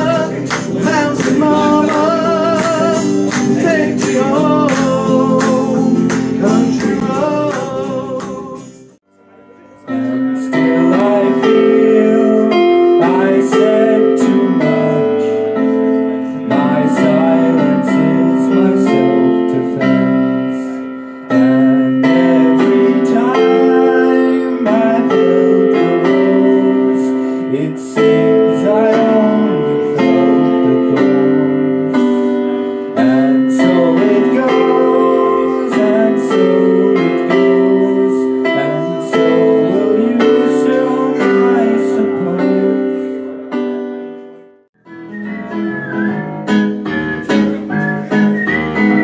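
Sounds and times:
man singing: 0:00.0 - 0:09.0, 0:09.7 - 0:43.3
digital piano chords: 0:00.0 - 0:49.0.

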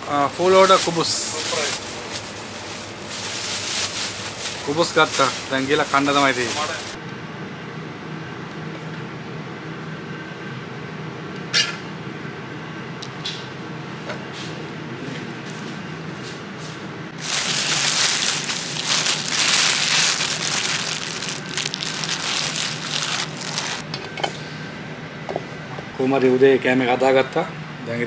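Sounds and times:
ventilation hum: 0:00.0 - 0:28.0
plastic bag crinkling: 0:00.5 - 0:07.0, 0:17.2 - 0:23.8.

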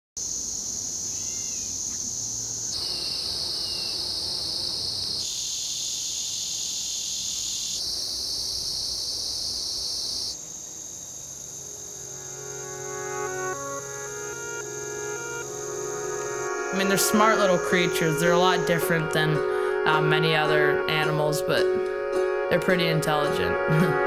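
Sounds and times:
crickets chirring: 0:00.2 - 0:20.0
faint bird chirps: 0:01.1 - 0:02.0.

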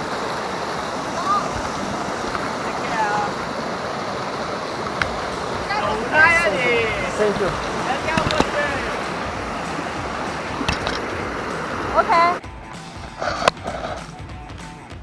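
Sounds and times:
stream rushing over rocks: 0:00.0 - 0:12.4
voices: 0:00.0 - 0:12.4.

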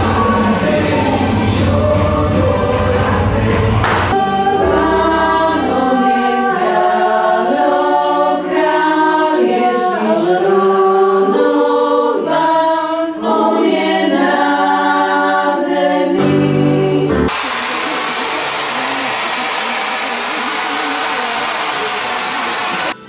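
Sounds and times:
women's choir singing a cappella: 0:00.0 - 0:17.3.

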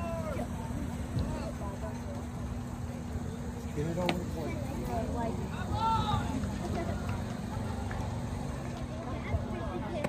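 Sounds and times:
distant indistinct voices: 0:00.0 - 0:10.0.

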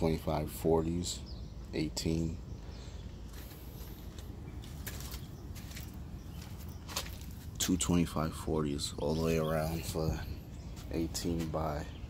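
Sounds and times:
faint clicks and rustles: 0:03.3 - 0:07.5.

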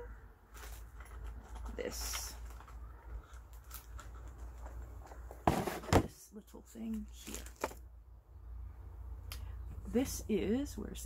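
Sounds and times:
rummaging in cardboard box: 0:00.5 - 0:06.2.

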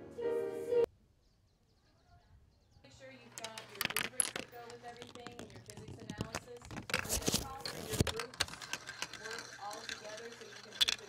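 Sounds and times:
marbles rolling on plastic track: 0:03.2 - 0:11.0.

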